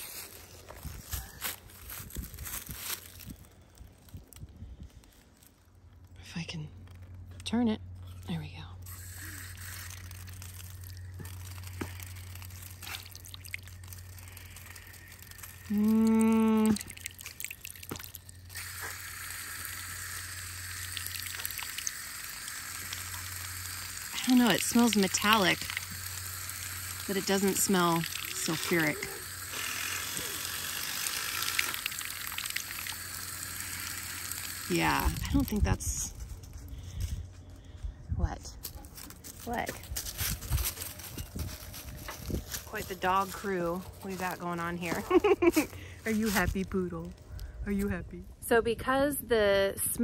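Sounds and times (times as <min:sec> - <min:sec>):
dogs stepping through dry leaves: 0:00.0 - 0:06.0, 0:08.9 - 0:17.4, 0:38.6 - 0:47.2
water stream splashing: 0:09.6 - 0:35.6.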